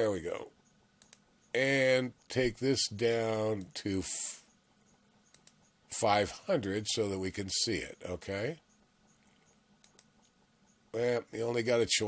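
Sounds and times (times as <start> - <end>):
computer mouse clicks: 0.6 - 1.5, 4.8 - 5.8, 8.7 - 10.8.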